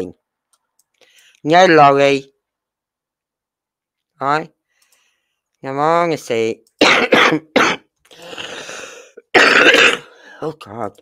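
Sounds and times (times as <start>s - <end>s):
person clearing throat: 6.8s - 10.2s
person coughing: 6.8s - 10.3s.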